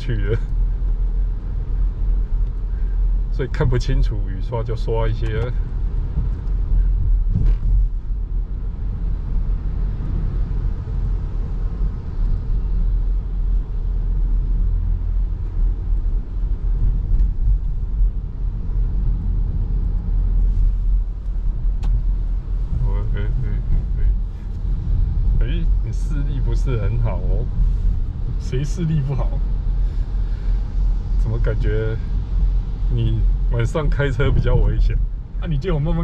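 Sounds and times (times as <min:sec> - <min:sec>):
car engine and road rumble: 0:00.0 - 0:36.0.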